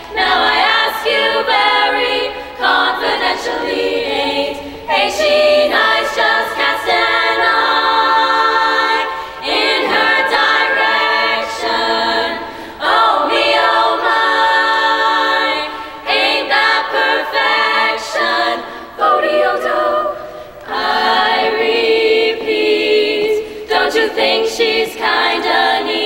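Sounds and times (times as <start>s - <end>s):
girls choir singing a cappella: 0.0s - 26.0s.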